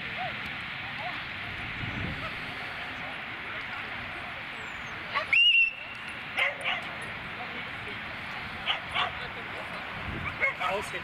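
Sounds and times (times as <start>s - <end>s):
dog barking: 6.4s - 6.9s, 8.6s - 9.2s, 10.2s - 10.9s.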